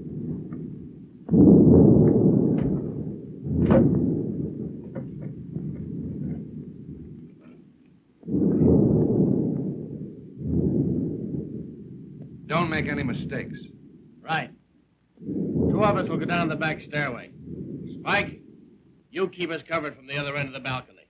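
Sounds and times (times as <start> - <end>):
loud booms with low rumble: 0.0 - 19.3.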